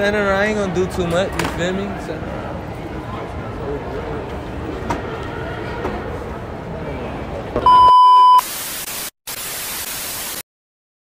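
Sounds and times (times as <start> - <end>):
background chatter: 0.0 - 7.6
steady bleep tone: 7.6 - 8.5
static hiss: 8.4 - 10.4.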